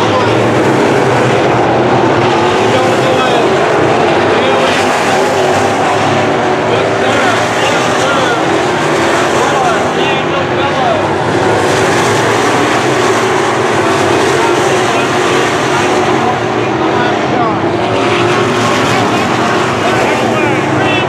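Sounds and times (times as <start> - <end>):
race car engines droning: 0.0 - 21.0.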